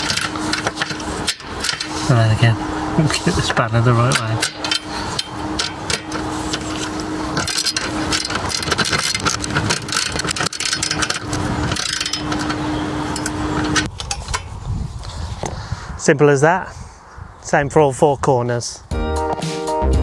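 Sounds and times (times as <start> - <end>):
spanners clicking and rattling: 0.0 - 2.5, 3.1 - 14.5
steady hum: 0.0 - 15.1.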